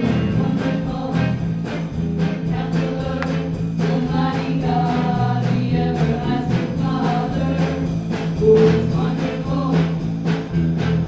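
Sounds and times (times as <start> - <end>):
singers in harmony: 0.0 - 1.5, 2.4 - 10.1
band playing: 0.0 - 11.0.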